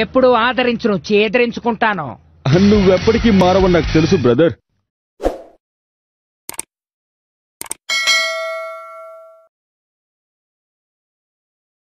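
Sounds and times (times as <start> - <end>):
short swish: 5.2 - 5.6
quick clicks: 6.5 - 6.7, 7.6 - 7.8
bright bell ding: 7.9 - 9.5.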